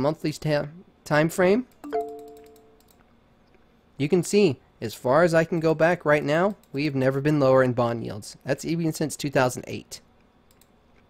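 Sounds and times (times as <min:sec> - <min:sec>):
chime-like ringing tone: 0:01.8 - 0:02.8.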